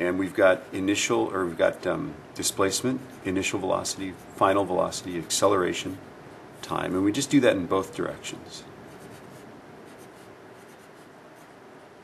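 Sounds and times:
pencil writing on paper: 8.9s - 11.6s.

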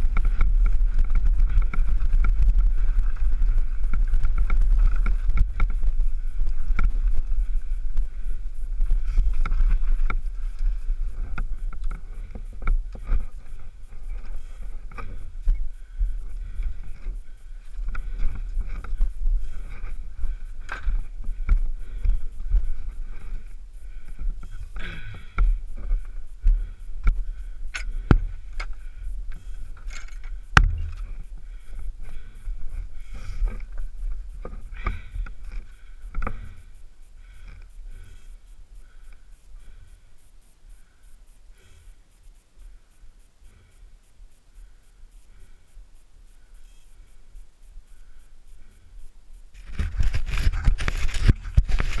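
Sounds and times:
bike scraping: 0.0s - 38.3s, 49.6s - 52.0s
bike rattling over bumps: 0.0s - 39.0s, 49.6s - 52.0s
wind and tyres rumbling: 0.0s - 42.2s, 46.3s - 52.0s
breathy hisses: 5.0s - 49.6s.

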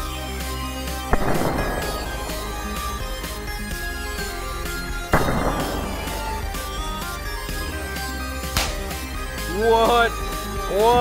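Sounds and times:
electronic background music: 0.0s - 11.0s
solder exploding with sharp bang: 1.1s - 4.4s, 5.1s - 7.1s, 8.6s - 8.9s.

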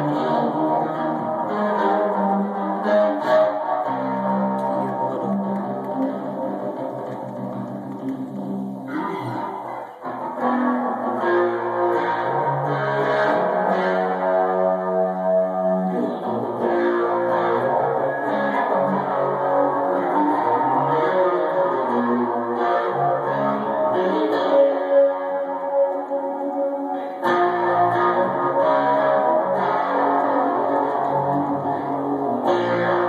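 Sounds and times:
electric guitar chords: 0.0s - 33.0s.

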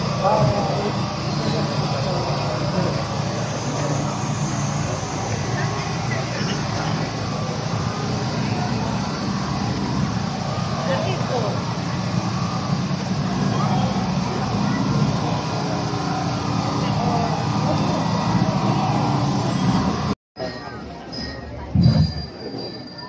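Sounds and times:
crowd murmuring: 0.0s - 23.0s.

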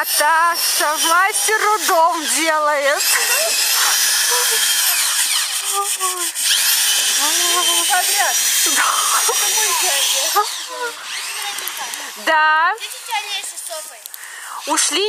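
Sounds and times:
power drill driving into wood: 0.0s - 12.2s.

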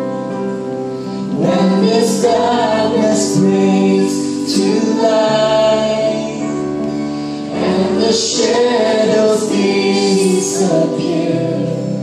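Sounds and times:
keyboard: 0.0s - 12.0s
man and woman singing a duet: 1.3s - 12.0s.

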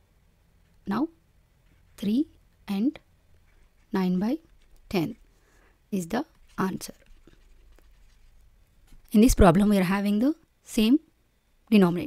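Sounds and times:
low steady hum: 0.0s - 12.0s
stylus scratching on tablet: 3.3s - 5.6s, 6.2s - 9.5s.

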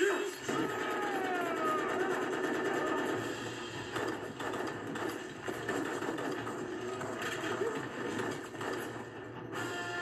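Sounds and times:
automatic gunfire: 0.4s - 9.1s.

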